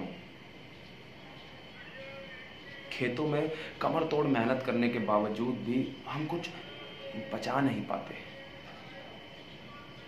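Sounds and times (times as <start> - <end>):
background hiss: 0.0 - 10.0
high-pitched tone: 1.2 - 10.0
man speaking: 2.9 - 8.4.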